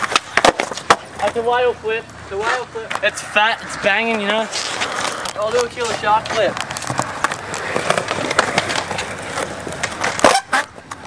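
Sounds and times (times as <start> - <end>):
skateboard clack: 0.0 - 1.4, 4.2 - 11.0
skateboard wheels rolling on concrete: 0.0 - 11.0.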